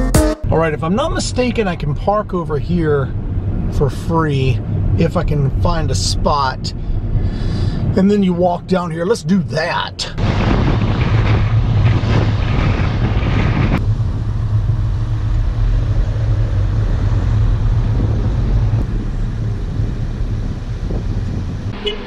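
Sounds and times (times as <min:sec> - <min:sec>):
road and wind noise rumble: 0:00.5 - 0:22.0.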